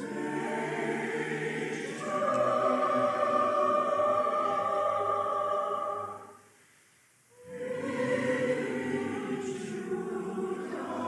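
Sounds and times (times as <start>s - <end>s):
choir singing held chords: 0.0s - 6.5s, 7.3s - 11.0s.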